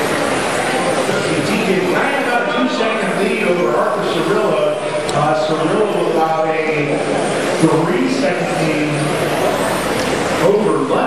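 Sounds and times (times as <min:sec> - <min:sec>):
rc cars racing past: 0:00.0 - 0:11.0
voices: 0:00.0 - 0:11.0.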